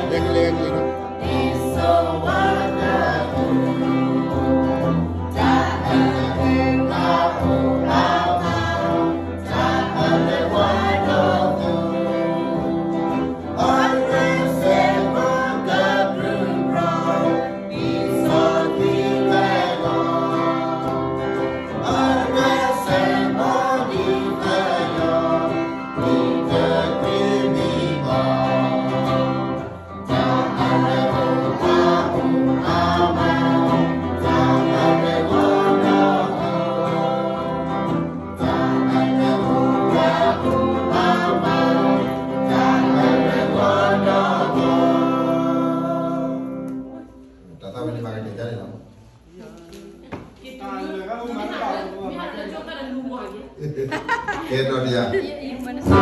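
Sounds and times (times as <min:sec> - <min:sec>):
several voices singing: 0:00.0 - 0:47.4, 0:54.4 - 0:56.0
guitar accompaniment: 0:00.0 - 0:52.5, 0:53.1 - 0:56.0.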